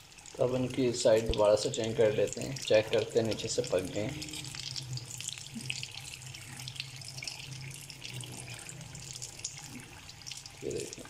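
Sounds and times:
food sizzling in hot oil: 0:00.0 - 0:11.0.

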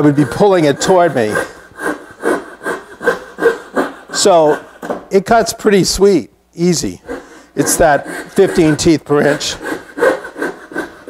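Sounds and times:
hand saw cutting wood: 0:00.0 - 0:05.6, 0:06.6 - 0:11.0.

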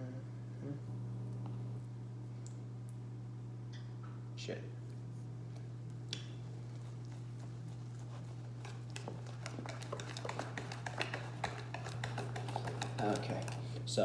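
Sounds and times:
low hum: 0:00.0 - 0:13.8
utensil tapping against bowl: 0:08.6 - 0:13.6.

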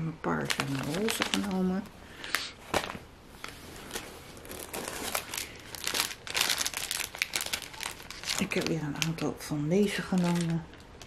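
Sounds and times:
plastic packaging crinkling: 0:00.3 - 0:11.0.

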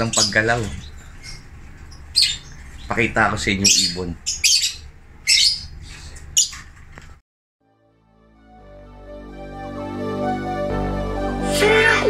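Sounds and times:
lovebirds squawking: 0:00.0 - 0:06.6.

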